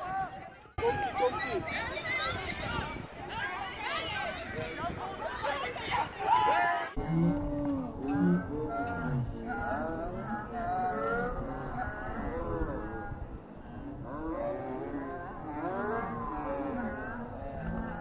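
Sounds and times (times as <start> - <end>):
distant voices shouting: 0.0 - 18.0.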